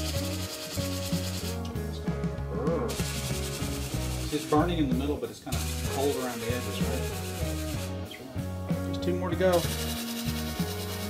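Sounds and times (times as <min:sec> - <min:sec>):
spray gun hissing: 0:00.0 - 0:01.6, 0:02.9 - 0:08.1, 0:09.5 - 0:11.0
background music: 0:00.0 - 0:11.0.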